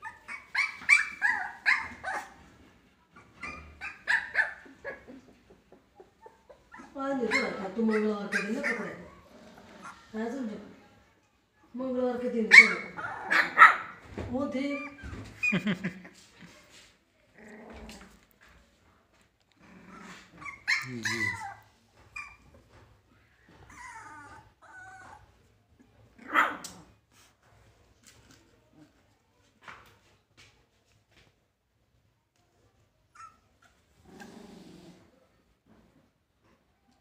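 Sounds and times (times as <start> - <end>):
puppies growling: 0.0 - 10.2, 17.2 - 18.3, 19.5 - 22.8, 23.5 - 25.3, 33.2 - 35.9.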